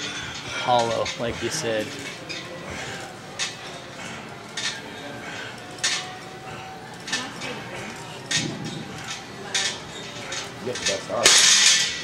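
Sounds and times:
weight plates clinking: 8.2 - 12.0.

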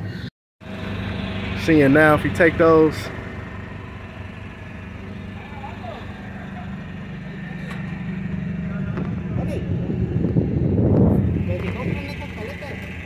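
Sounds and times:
truck engine idling: 0.6 - 13.0.

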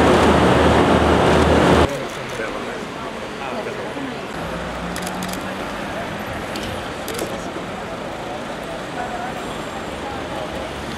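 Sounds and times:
road traffic noise: 0.0 - 10.9
murmur of people talking: 1.8 - 10.9.

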